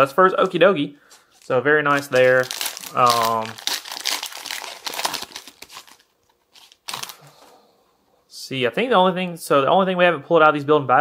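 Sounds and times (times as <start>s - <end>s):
foil wrapper crinkling: 1.3s - 7.2s.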